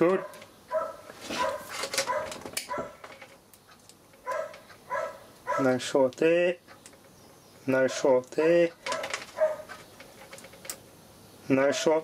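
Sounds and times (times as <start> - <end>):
dog barking high-pitched: 0.2 - 3.0, 4.2 - 5.8, 8.9 - 9.7.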